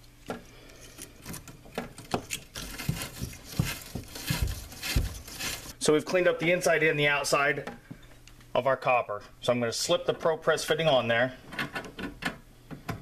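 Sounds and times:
scrubbing copper pipe: 0:02.6 - 0:05.8.

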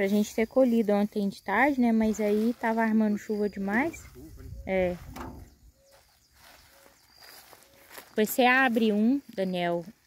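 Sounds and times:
wind rumble on microphone: 0:03.7 - 0:05.8.

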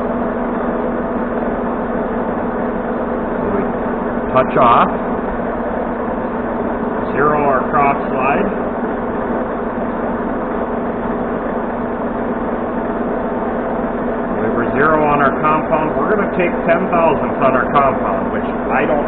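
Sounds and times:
lathe running: 0:00.0 - 0:19.0.

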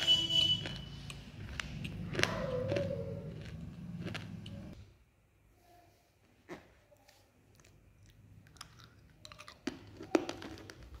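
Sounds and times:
chewing with crunches and clicks: 0:00.0 - 0:04.8, 0:07.1 - 0:11.0.

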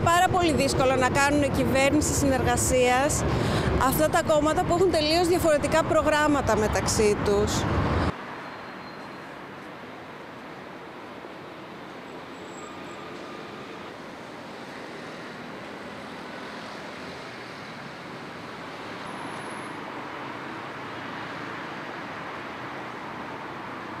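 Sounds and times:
city street traffic: 0:00.0 - 0:24.0.

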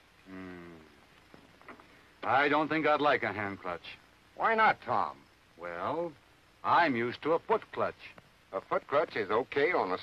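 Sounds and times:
low voice-like hum: 0:00.2 - 0:01.1.

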